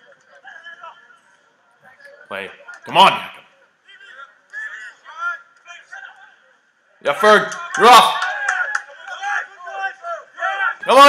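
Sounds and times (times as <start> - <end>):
people shouting excitedly: 7.7 - 11.0.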